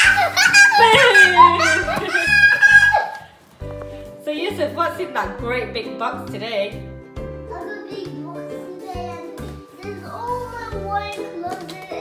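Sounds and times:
child squealing and laughing: 0.0 - 3.3
people laughing: 0.0 - 3.3
background music with steady beat: 0.0 - 12.0.

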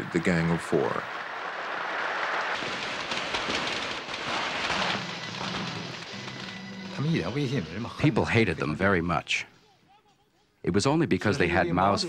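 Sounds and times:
firecrackers crackling: 0.0 - 7.9.

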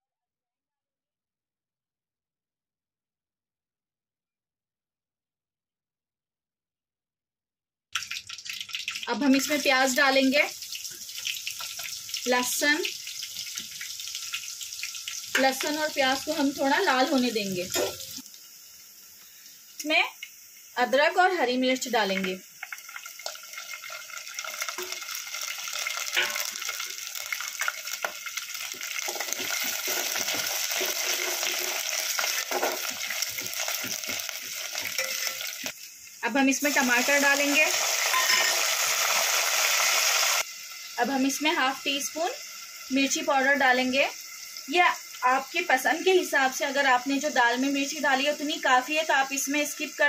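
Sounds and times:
frying in hot oil sizzling: 7.9 - 50.0.

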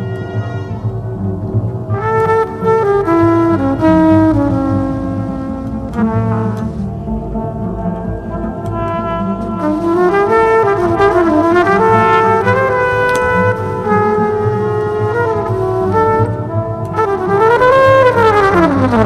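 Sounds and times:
processed trumpet melody: 0.0 - 19.0.

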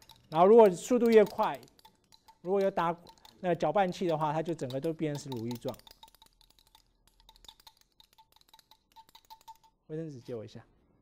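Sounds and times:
stirring rod clinking on container: 0.0 - 9.8.

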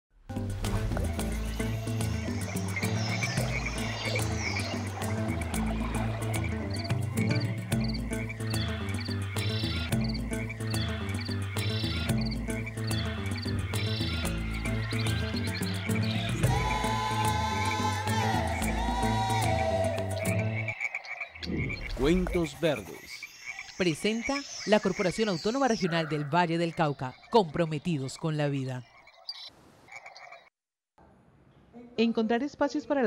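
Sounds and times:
background music low notes: 0.2 - 20.8
frogs chirping: 1.2 - 30.5.

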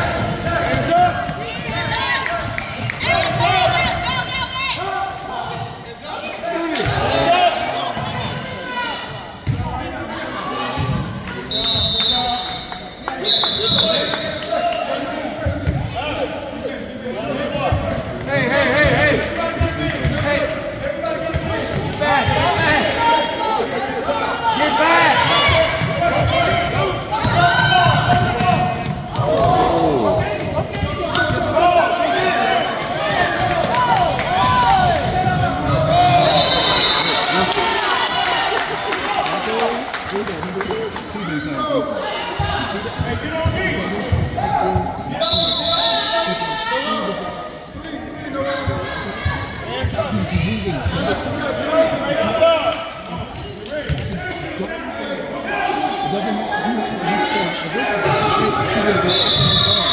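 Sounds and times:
referee whistle blasts: 11.5 - 14.5, 36.1 - 37.2, 45.2 - 46.4, 59.0 - 59.9.

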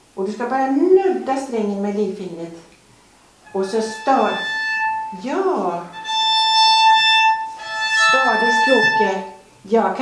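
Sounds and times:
violin harmonic note: 3.4 - 9.5.

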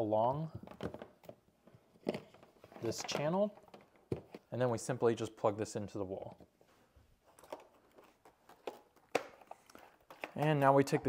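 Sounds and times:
soft knocks and handling clatters: 0.5 - 4.5, 6.2 - 11.0.

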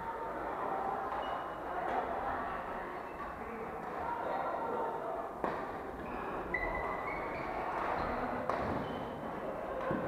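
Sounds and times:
sports hall background noise: 0.0 - 10.0
court shoes squeaking: 8.6 - 9.2.

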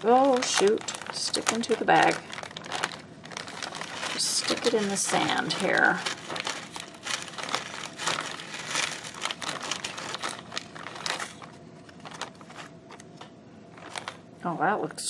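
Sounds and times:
plastic bag crinkling: 0.0 - 14.4.

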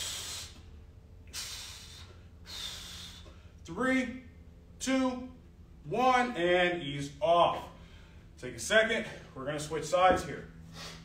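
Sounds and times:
man breathing hard: 0.0 - 3.7, 7.7 - 8.4, 10.6 - 11.0.

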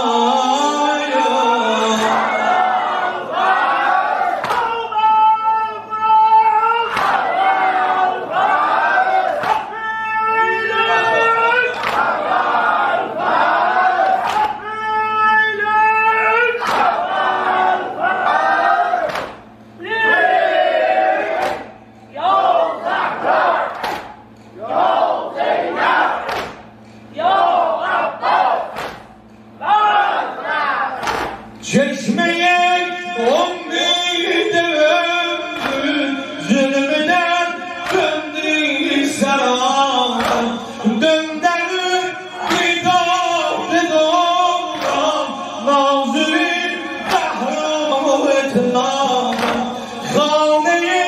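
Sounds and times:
men chanting in unison: 0.0 - 9.8, 10.4 - 14.6, 15.6 - 23.9, 31.6 - 51.0
hands slapping chests: 4.4 - 4.7, 9.4 - 9.6, 11.8 - 12.1, 14.0 - 14.6, 16.6 - 17.0, 19.0 - 19.5, 21.4 - 21.7, 23.8 - 24.2, 26.2 - 26.6, 28.7 - 29.2, 31.0 - 31.4, 49.3 - 49.7.

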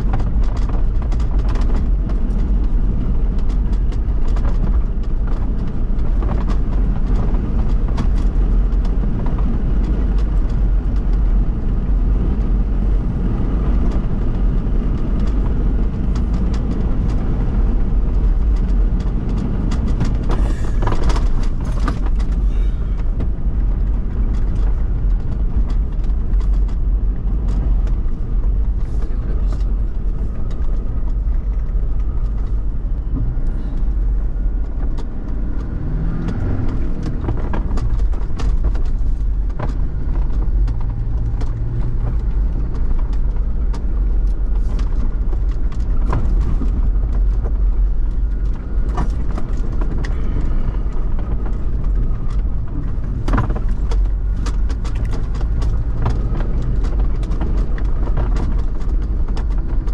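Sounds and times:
vehicle engine and tyres rumbling: 0.0 - 59.9.

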